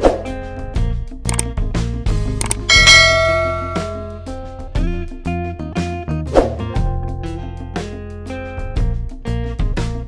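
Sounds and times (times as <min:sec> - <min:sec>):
background guitar music: 0:00.1 - 0:10.0
bright bell ding: 0:02.7 - 0:04.3.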